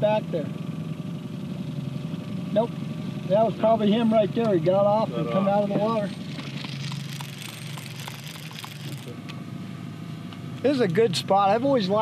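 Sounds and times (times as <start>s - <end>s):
boat motor humming: 0.0s - 12.0s.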